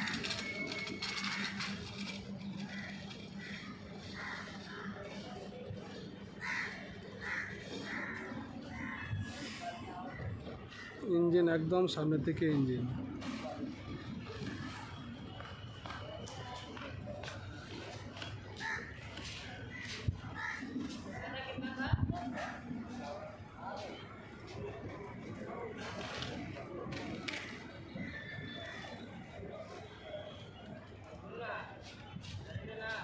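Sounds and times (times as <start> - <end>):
faint distant voices: 0.0 - 33.0.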